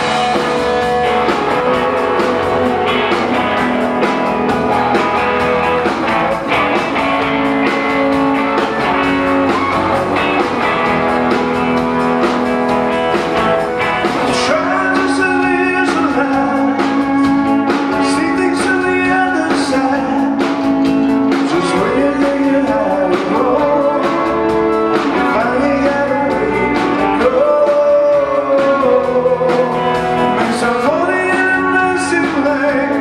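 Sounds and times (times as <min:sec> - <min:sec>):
rock band playing loudly: 0:00.0 - 0:33.0.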